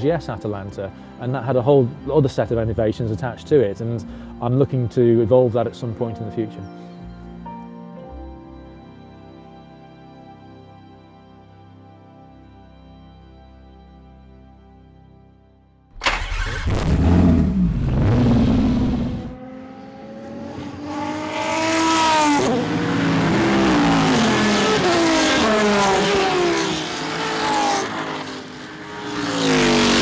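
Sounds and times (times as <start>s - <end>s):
racing car engines accelerating: 16.0s - 30.0s.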